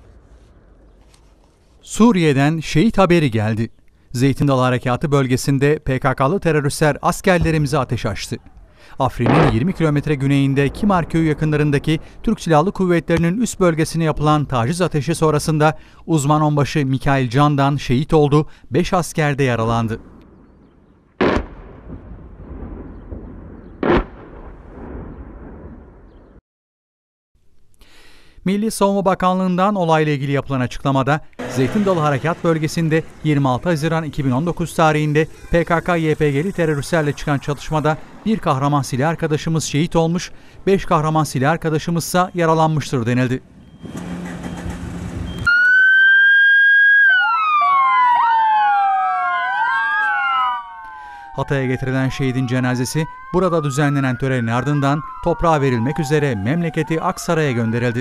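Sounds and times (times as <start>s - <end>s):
loud explosions with rolling rumble: 9.1s - 15.6s, 20.0s - 26.4s
engine noise: 31.4s - 38.3s, 43.5s - 45.5s
emergency sirens wailing: 31.4s - 39.2s, 43.4s - 58.0s.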